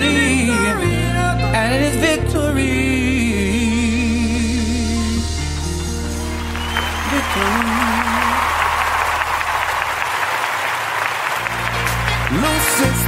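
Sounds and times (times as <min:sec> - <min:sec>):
gospel song: 0:00.0 - 0:13.0
applause: 0:06.4 - 0:13.0.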